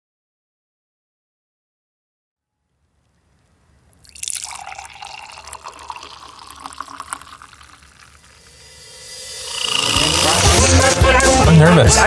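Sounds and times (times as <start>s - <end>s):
coffee pouring into mug: 4.0s - 10.8s.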